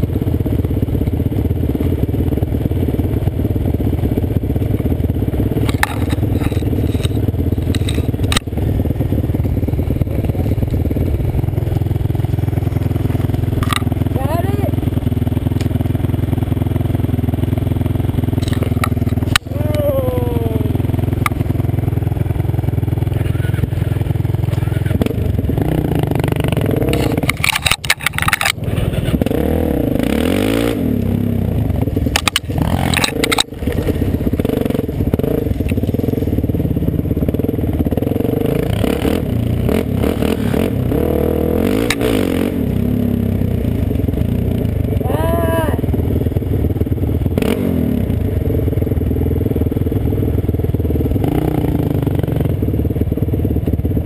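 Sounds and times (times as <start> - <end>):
quad engines running: 0.0 - 54.0
branches scraping against quad: 5.7 - 8.4, 26.8 - 29.3, 32.1 - 36.5.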